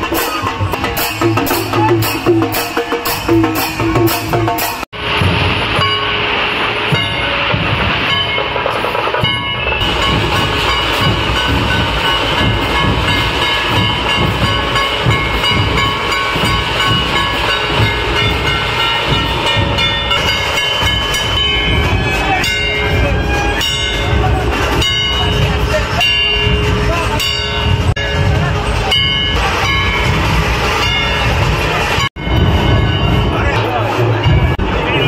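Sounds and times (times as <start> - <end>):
fast barrel drumming: 0.0 - 35.0
steady ringing din: 0.0 - 35.0.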